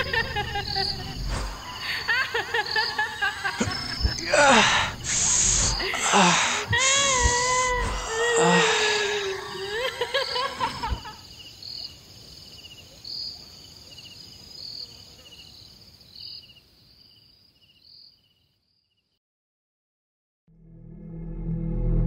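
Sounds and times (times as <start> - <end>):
crickets chirping: 0.0 - 19.0
man crying out in pain: 3.6 - 11.0.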